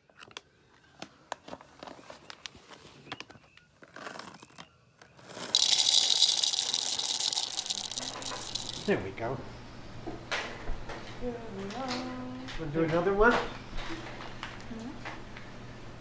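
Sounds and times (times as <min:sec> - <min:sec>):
loud steady hiss: 0:05.4 - 0:09.0.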